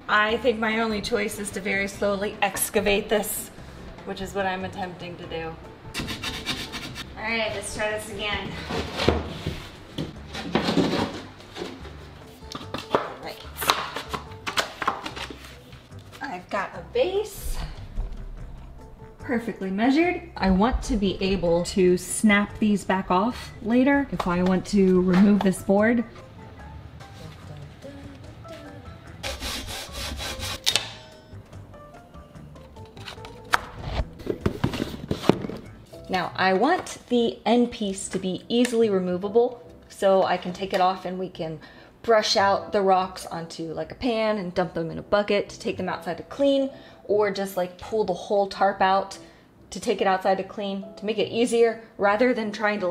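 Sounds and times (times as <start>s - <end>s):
background music: 0.0s - 52.9s
plywood board scraping on tile: 6.0s - 7.1s, 8.4s - 12.0s.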